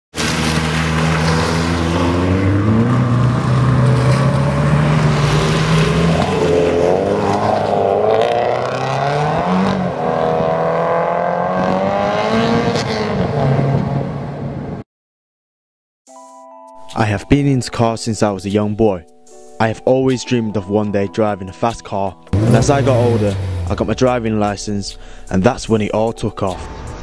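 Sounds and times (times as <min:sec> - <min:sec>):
car engines accelerating: 0:00.2 - 0:14.7, 0:22.3 - 0:25.9.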